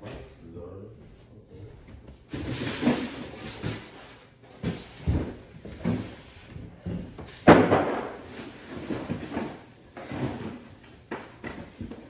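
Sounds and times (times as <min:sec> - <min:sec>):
objects knocking and rustling: 0:02.0 - 0:12.0.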